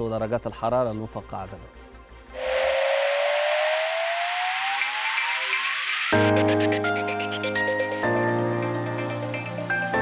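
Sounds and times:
whooshing riser with rising tone: 2.3s - 6.2s.

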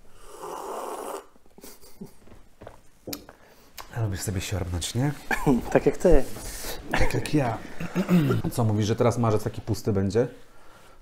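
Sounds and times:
person slurping a drink: 0.1s - 1.4s.

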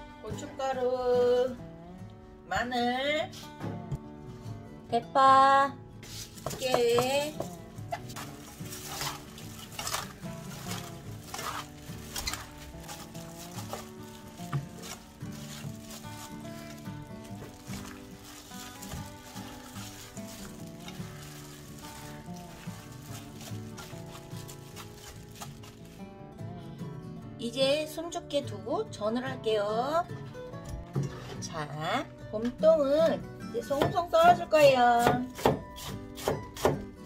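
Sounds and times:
background music: 0.0s - 37.0s
wet leaves rustling and squishing: 6.1s - 26.2s.

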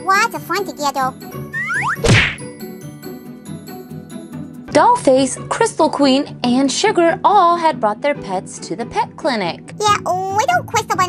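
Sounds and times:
whack transition sound effect: 1.6s - 2.4s
light tinkling music: 2.4s - 5.0s.

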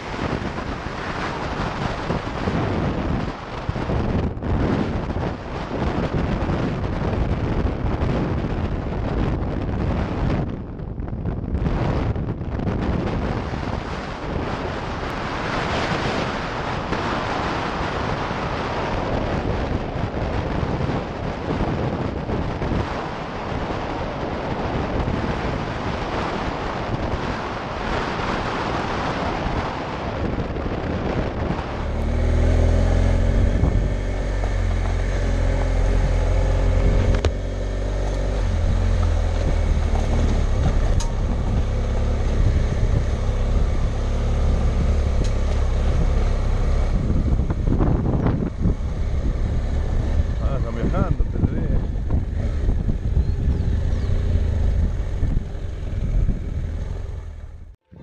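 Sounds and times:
motorcycle engine droning: 0.0s - 58.0s
wind rushing over camera: 0.0s - 58.0s.

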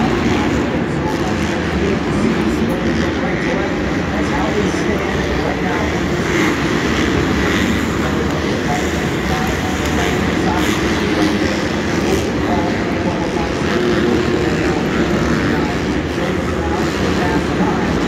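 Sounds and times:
crowd voices: 0.0s - 18.0s
dirt bike engines: 0.0s - 18.0s.

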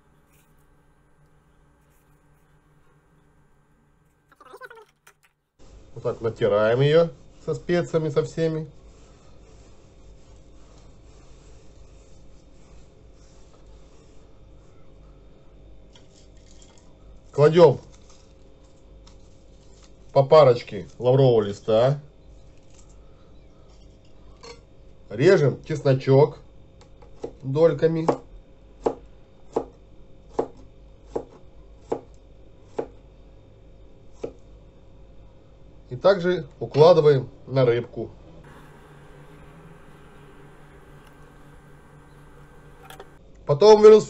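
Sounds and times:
salt rubbing against fish: 7.1s - 14.4s.

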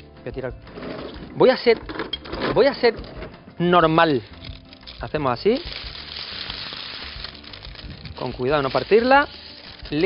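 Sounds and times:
quiet background music: 0.0s - 10.0s
paper scraping across metal tray: 5.5s - 10.0s.

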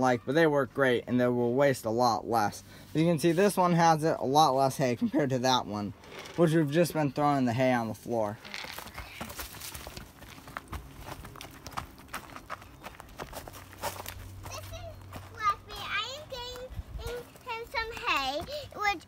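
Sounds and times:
footsteps on dry leaves: 9.0s - 15.8s
young child talking: 14.4s - 19.0s.

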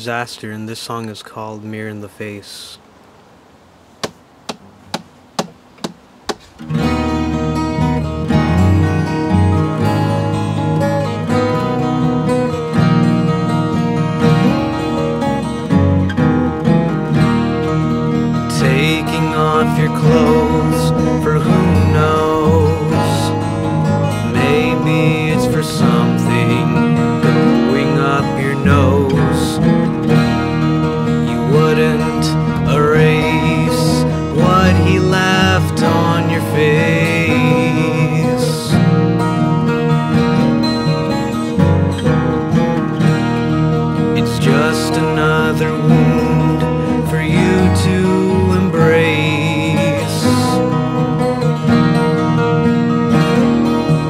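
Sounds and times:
sharp count-in taps: 4.0s - 6.5s
acoustic guitars strumming chords: 4.0s - 54.0s.

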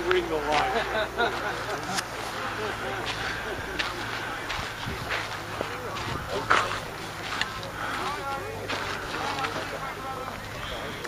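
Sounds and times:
low outdoor hum: 0.0s - 11.0s
people talking indistinctly: 0.0s - 11.0s.

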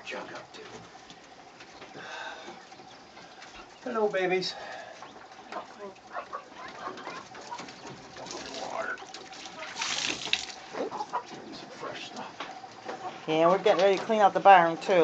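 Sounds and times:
chickens clucking softly: 4.8s - 9.9s, 10.6s - 13.9s.

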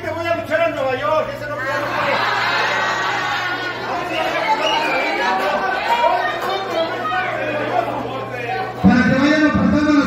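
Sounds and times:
crowd voices calling out: 1.5s - 10.0s.

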